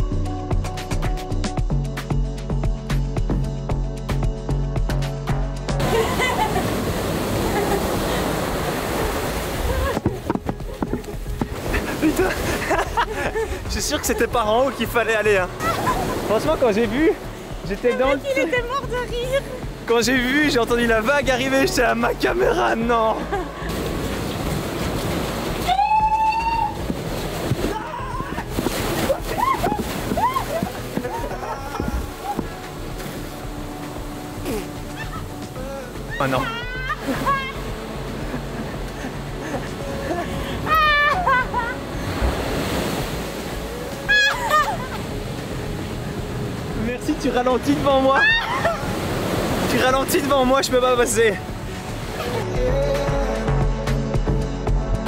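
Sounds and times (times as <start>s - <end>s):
wave rushing into sea cave: 5.8s - 10.3s, 11.2s - 18.5s, 22.9s - 53.2s
water splashing and knocking: 5.8s - 19.9s, 23.7s - 36.1s.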